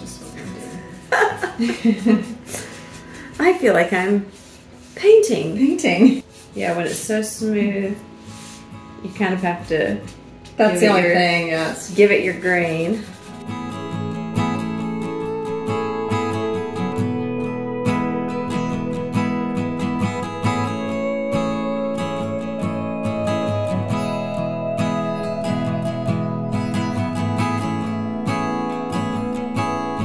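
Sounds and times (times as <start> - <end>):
strummed acoustic guitar: 7.7 - 30.0.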